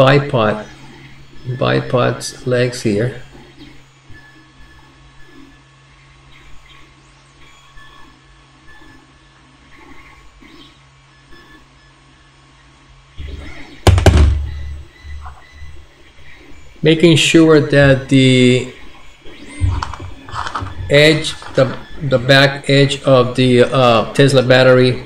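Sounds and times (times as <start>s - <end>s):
steady low hum: 0.0s - 25.0s
loud low thumps and knocks: 13.8s - 14.9s
faint handling sounds: 19.7s - 21.9s.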